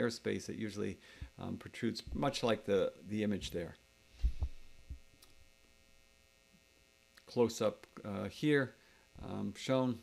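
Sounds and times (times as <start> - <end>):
faint electrical hum: 0.0 - 10.0
soft low thumps: 2.1 - 2.6, 4.2 - 5.2.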